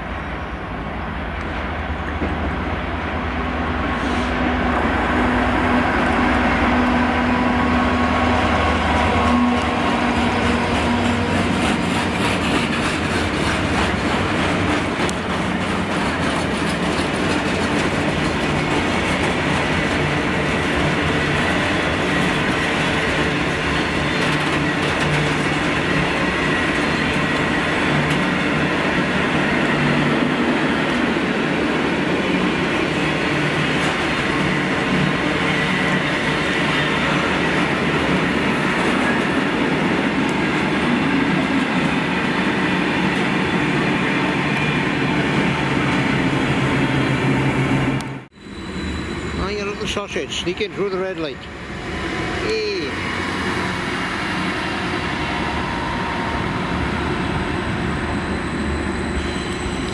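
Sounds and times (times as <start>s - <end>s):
freight wagon wheels on rails: 6.1s - 31.4s.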